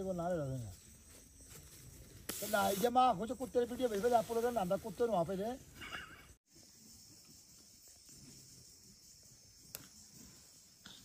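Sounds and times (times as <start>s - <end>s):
brief hiss: 2.2s - 3.0s.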